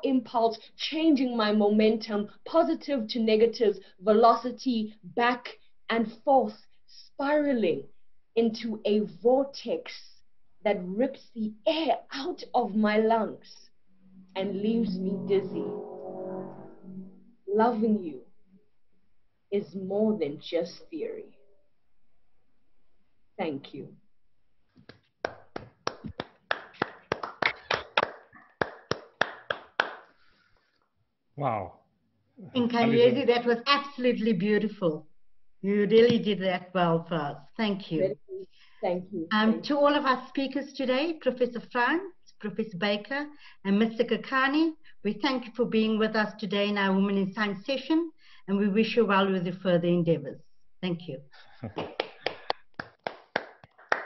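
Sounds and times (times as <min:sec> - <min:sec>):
hands clapping in applause: 0:24.8 - 0:30.2, 0:51.8 - 0:54.0.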